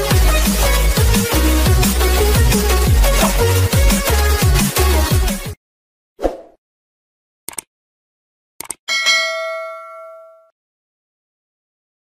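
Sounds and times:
notification bell ding: 8.9s - 10.5s.

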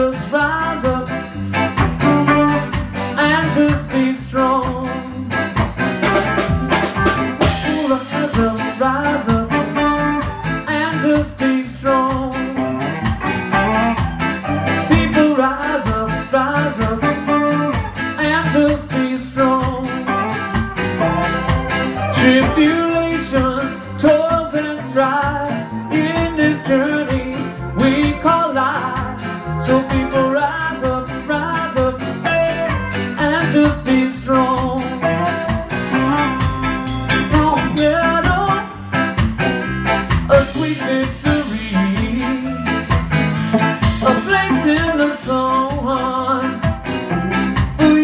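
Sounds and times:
guitar lines: 0.0s - 48.0s
steady drum beat: 0.0s - 48.0s.

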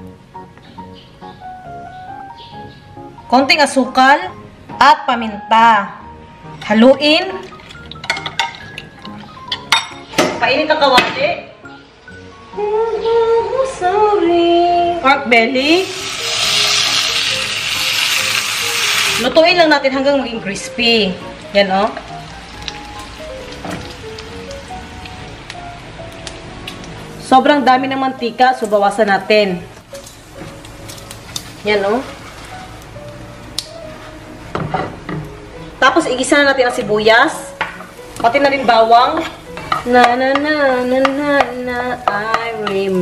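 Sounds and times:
faint background music: 0.0s - 43.0s
meat sizzling in a frying pan: 15.8s - 19.4s, 22.0s - 26.2s.

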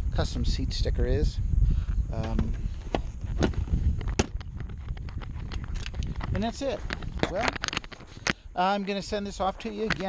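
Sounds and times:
low rumble on microphone: 0.0s - 10.0s.

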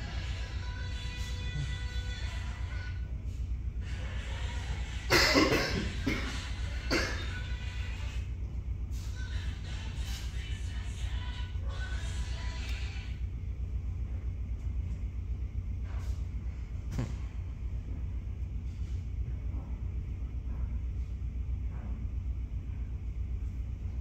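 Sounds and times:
deep rumble: 5.9s - 24.0s.

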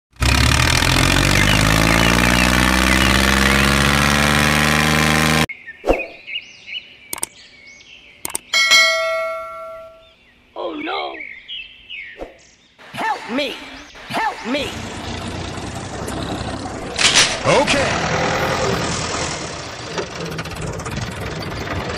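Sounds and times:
sharp clicks: 7.1s - 7.3s, 8.2s - 8.5s
ringing bell-like ding: 8.6s - 10.0s.

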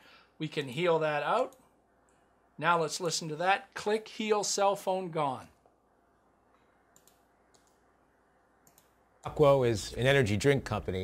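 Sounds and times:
faint room hiss: 0.0s - 11.0s
faint clicks: 6.5s - 7.8s.

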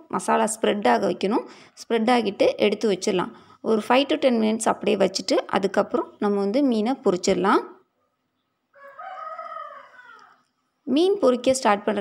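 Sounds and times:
faint rooster crowing: 8.7s - 10.6s.

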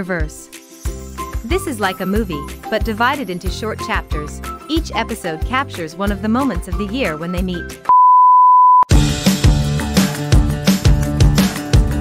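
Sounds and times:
test tone beep: 7.9s - 8.9s
background music with beat: 8.9s - 12.0s.

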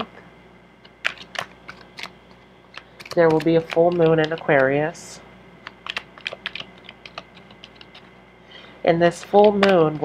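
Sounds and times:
cards being shuffled: 0.8s - 4.8s, 5.6s - 8.1s.

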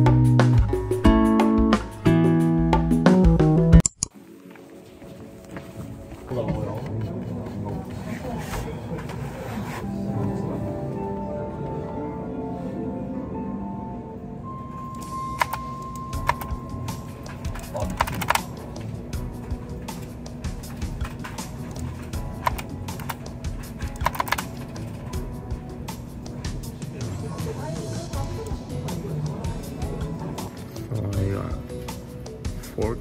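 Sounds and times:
background music: 0.0s - 8.4s, 9.4s - 33.0s
keyboard keys clicking: 14.9s - 16.6s, 17.3s - 18.9s, 20.7s - 25.1s.

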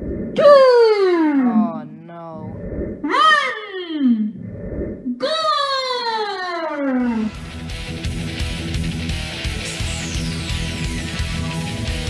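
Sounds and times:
high voice wailing downward: 0.4s - 4.4s, 5.2s - 7.4s.

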